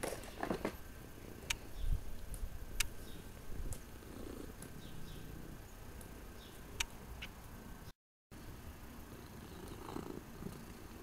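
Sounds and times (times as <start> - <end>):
sharp clicks: 2.3 - 3.0, 6.8 - 7.4
cat purring: 3.5 - 6.2, 9.1 - 11.0.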